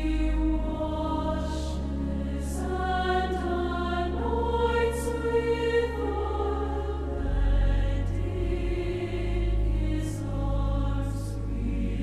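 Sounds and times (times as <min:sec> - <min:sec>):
choir singing in harmony: 0:00.0 - 0:12.0.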